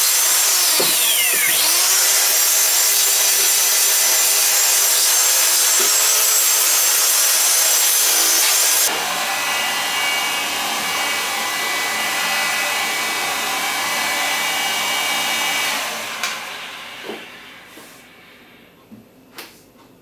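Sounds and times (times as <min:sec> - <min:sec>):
heat gun whining: 0:00.0 - 0:18.2
power saw cutting fibreglass: 0:00.0 - 0:18.3.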